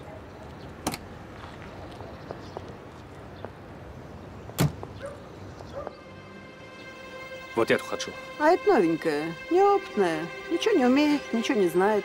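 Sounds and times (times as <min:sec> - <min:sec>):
sustained music notes: 0:05.8 - 0:12.0.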